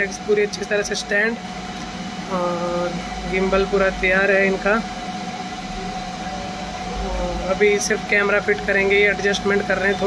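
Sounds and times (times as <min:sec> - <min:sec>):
faint constant hum: 0:00.0 - 0:10.0.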